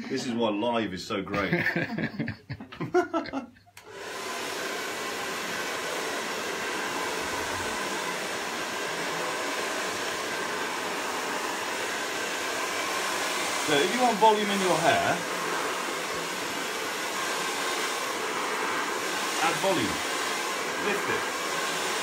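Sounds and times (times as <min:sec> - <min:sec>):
hair dryer running: 0:03.2 - 0:22.0.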